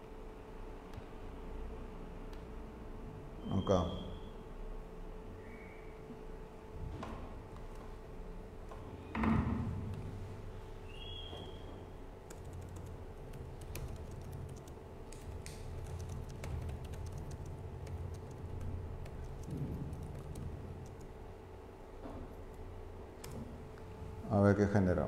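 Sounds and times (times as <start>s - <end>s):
low room hum: 0.0s - 25.0s
keyboard typing clicks: 12.3s - 21.1s, 23.2s - 23.5s.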